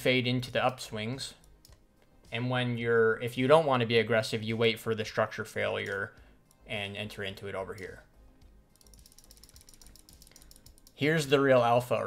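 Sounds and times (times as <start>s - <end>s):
computer mouse clicks: 1.4s - 1.8s, 8.7s - 11.0s.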